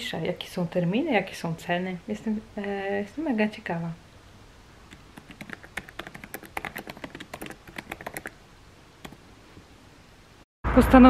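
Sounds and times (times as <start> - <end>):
typing on laptop keyboard: 4.9 - 8.4.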